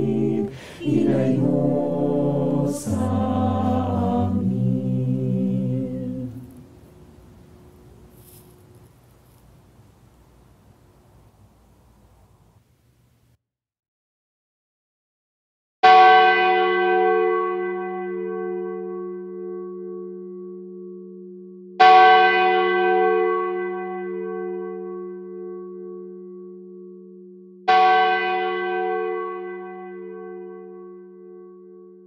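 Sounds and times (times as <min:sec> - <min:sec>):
church bell ringing: 0:15.8 - 0:32.0.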